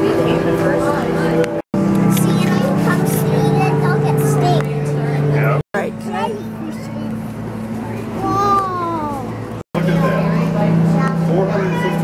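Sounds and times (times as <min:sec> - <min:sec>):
steady low hum: 0:00.0 - 0:11.9.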